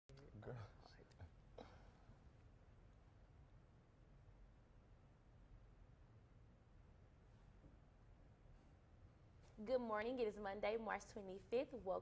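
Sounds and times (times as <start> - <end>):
low room noise: 0.1 - 12.0.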